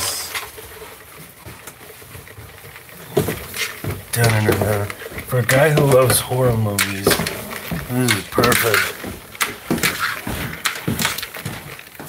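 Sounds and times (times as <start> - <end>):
footsteps on stairs: 0.0 - 12.0
knocks and rustling: 0.3 - 12.0.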